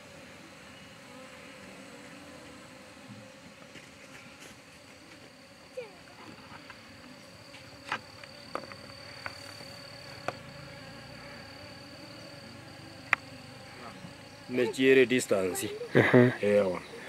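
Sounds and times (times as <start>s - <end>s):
insects buzzing: 0.0s - 17.0s
faint ticks: 13.0s - 13.3s
man talking: 14.5s - 16.9s.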